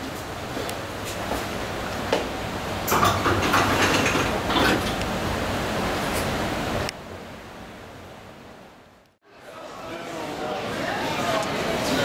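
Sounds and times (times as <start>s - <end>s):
elevator doors clattering and clicking: 2.8s - 5.1s.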